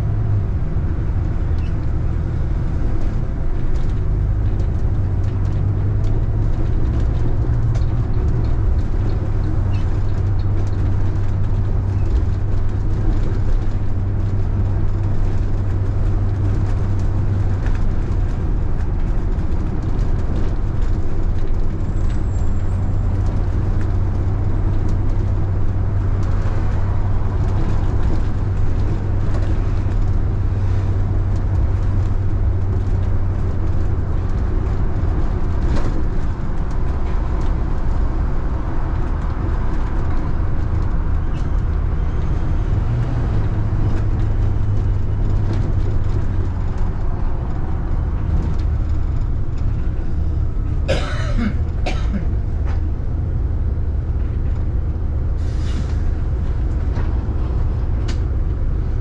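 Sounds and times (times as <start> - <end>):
vehicle driving rumble: 0.0 - 59.0.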